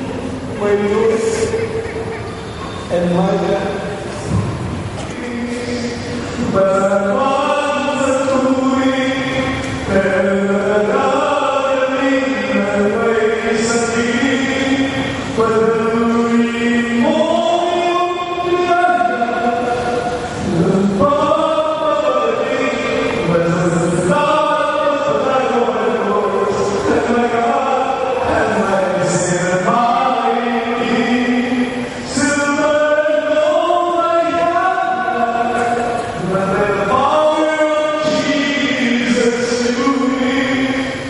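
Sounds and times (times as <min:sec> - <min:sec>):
congregation singing a hymn: 0:05.1 - 0:41.0.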